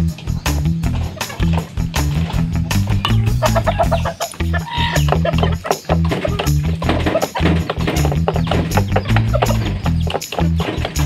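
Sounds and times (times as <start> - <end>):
background music with beat: 0.0 - 11.0
chicken clucking: 0.2 - 11.0.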